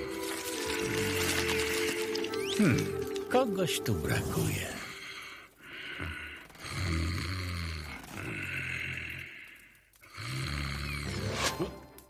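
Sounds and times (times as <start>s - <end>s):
man snoring: 6.0s - 9.3s, 10.1s - 11.3s.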